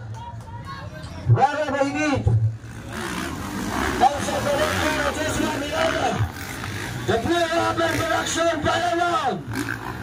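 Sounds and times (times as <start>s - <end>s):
dirt bike engines revving: 0.0s - 10.0s.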